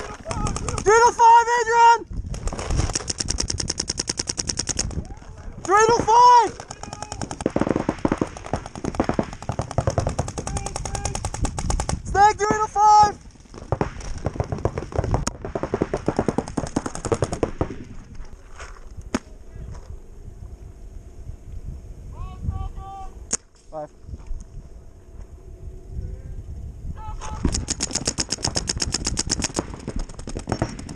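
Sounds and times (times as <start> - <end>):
paintball markers firing: 0.0 - 1.0, 2.4 - 5.0, 5.6 - 12.1, 13.5 - 18.0, 27.4 - 30.9.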